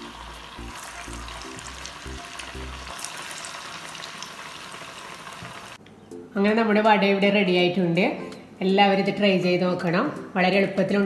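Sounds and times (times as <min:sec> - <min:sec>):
food frying in hot oil: 0:00.0 - 0:05.8.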